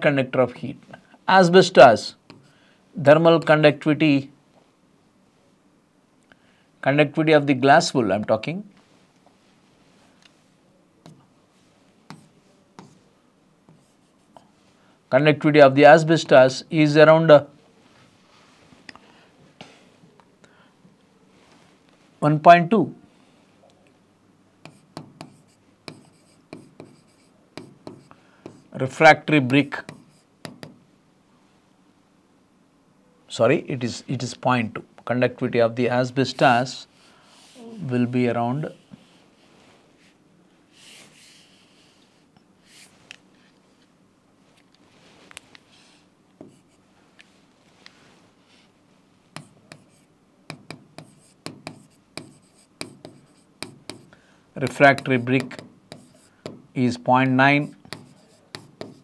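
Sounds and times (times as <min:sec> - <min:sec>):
chalk tapping and scratching: 0:12.1 - 0:13.0, 0:13.7 - 0:14.4, 0:24.6 - 0:28.7, 0:29.4 - 0:30.8, 0:46.4 - 0:46.8, 0:49.3 - 0:56.6, 0:57.6 - 0:59.0.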